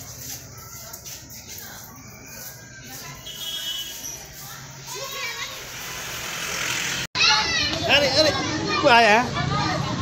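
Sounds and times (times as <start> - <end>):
children chattering: 0.0 - 10.0
child's high voice: 7.2 - 10.0.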